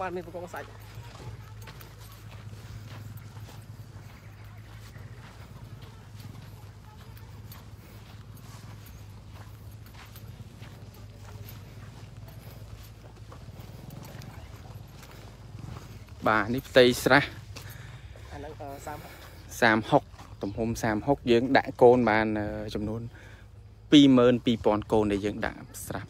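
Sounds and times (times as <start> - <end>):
footsteps on bank: 0.0 - 26.0.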